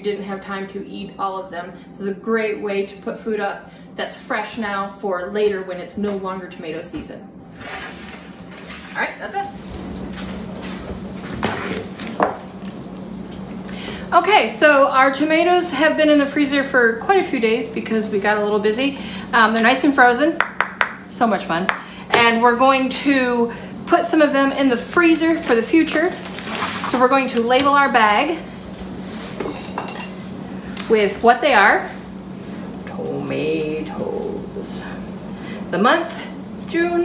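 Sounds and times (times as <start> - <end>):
steady low hum: 0.0 - 37.0
metal pan knocking on wood: 20.4 - 21.0.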